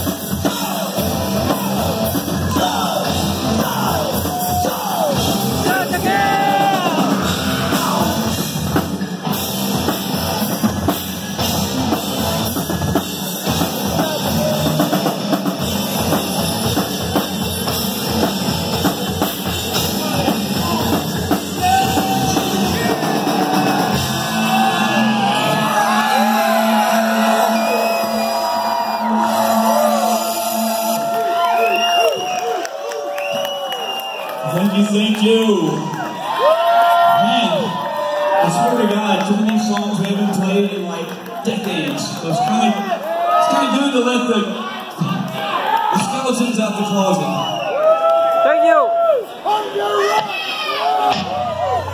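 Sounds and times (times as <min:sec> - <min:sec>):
live rock band: 0:00.0 - 0:32.4
shouted vocals: 0:00.4 - 0:08.3, 0:19.9 - 0:32.2.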